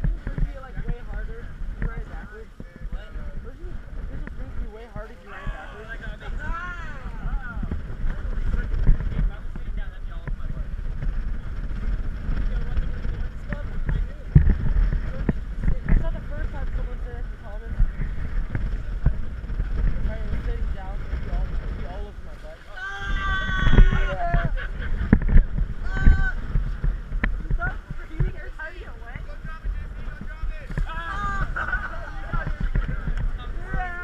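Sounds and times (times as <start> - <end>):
water rushing past hulls: 0.0 - 34.0
wind rumble on microphone: 0.0 - 34.0.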